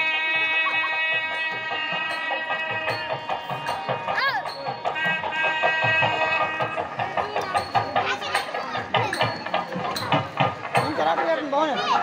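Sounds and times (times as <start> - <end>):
voices: 0.0 - 12.0
sharp percussion clicks: 0.9 - 12.0.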